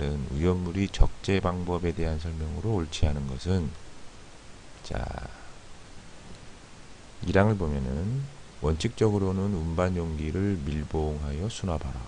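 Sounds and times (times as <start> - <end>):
person speaking: 0.0 - 3.8, 4.8 - 5.6, 7.2 - 12.0
microphone hiss and hum: 0.0 - 12.0.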